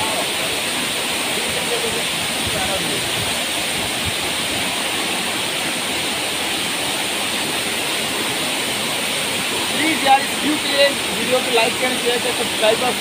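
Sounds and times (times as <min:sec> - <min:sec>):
waterfall rushing: 0:00.0 - 0:13.0.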